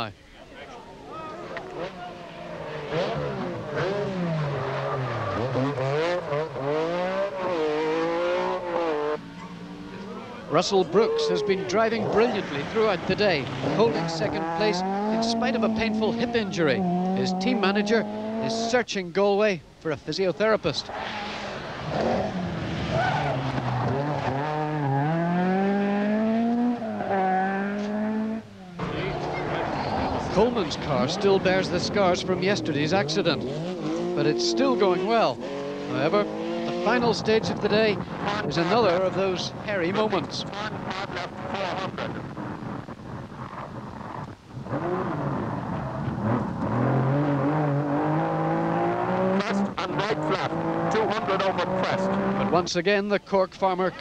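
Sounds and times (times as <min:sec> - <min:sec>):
steady car engine: 0:01.0 - 0:19.0, 0:20.4 - 0:53.2
rally car engine revving: 0:01.4 - 0:18.8, 0:20.8 - 0:52.7.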